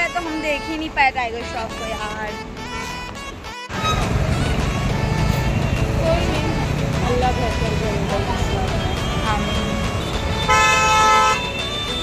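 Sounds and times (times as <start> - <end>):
vehicle horn: 0.0 - 8.1, 9.0 - 12.0
road rumble: 0.0 - 12.0.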